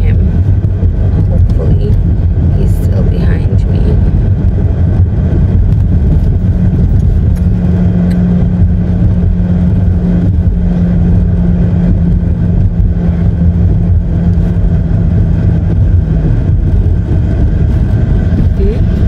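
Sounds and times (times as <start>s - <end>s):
car road and engine rumble: 0.0s - 19.0s
steady hum: 0.0s - 19.0s.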